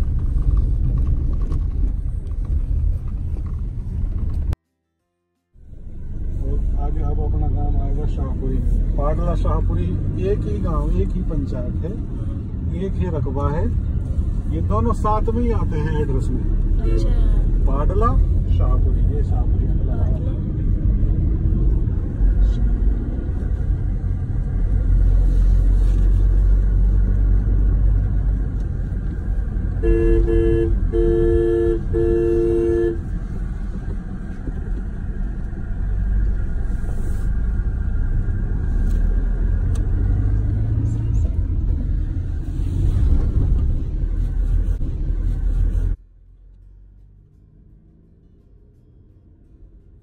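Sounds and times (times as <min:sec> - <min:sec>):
road and engine rumble in car: 0:00.0 - 0:50.0
car horn blasts: 0:29.8 - 0:33.1.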